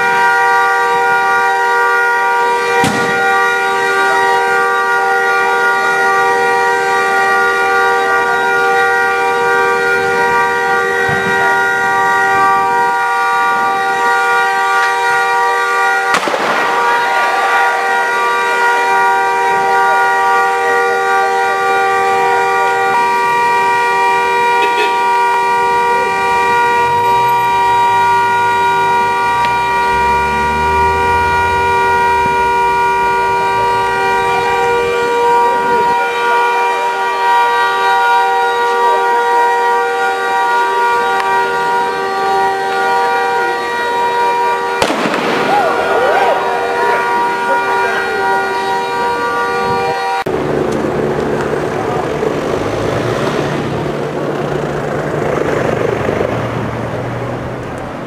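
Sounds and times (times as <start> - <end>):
car horn stuck on: 1.0 - 50.3
sharp bang: 2.8 - 3.3, 16.1 - 17.4, 44.8 - 46.9.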